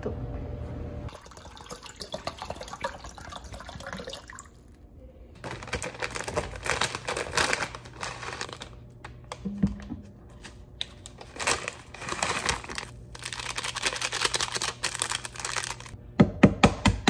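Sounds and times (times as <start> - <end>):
water pouring into a metal saucepan: 1.1 - 4.6.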